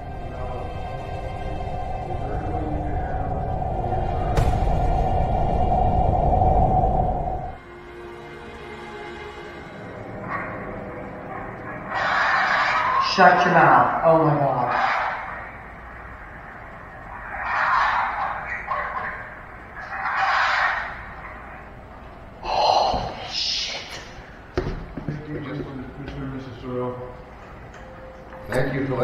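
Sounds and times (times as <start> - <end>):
muffled voices: 0.0 - 6.6, 10.2 - 24.2.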